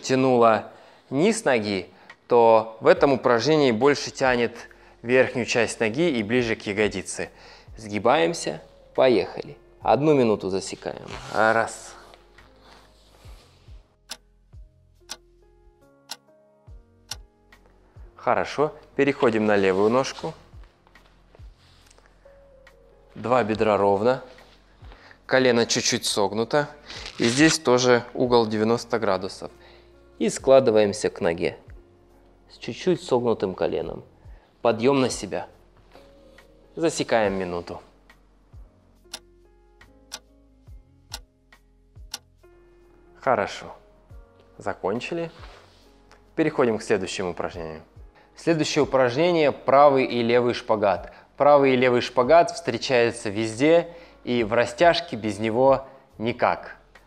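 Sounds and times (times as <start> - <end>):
soft background music: 0.0 - 57.0
clock ticking: 17.0 - 17.3, 42.0 - 42.3.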